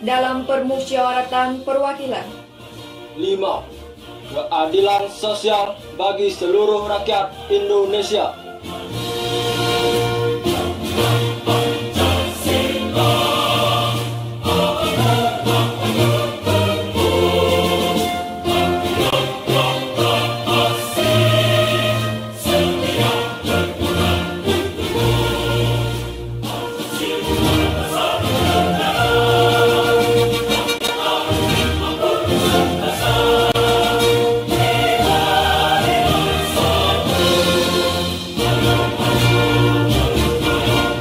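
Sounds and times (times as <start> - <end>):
choir singing held chord: 8.5 - 41.0.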